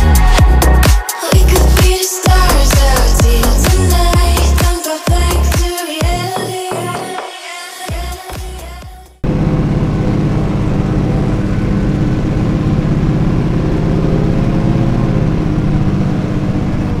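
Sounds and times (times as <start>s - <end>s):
tractor diesel engine running: 9.1s - 17.0s.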